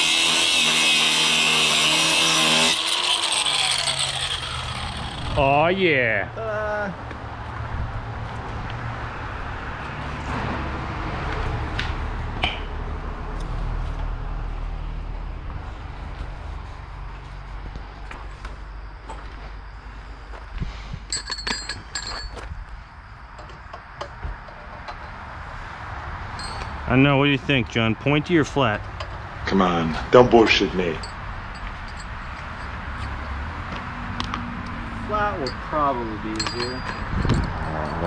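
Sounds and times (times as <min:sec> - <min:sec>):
metallic clinks of steel tools: 0:21.1 - 0:22.4, 0:26.4 - 0:26.8, 0:35.4 - 0:38.0.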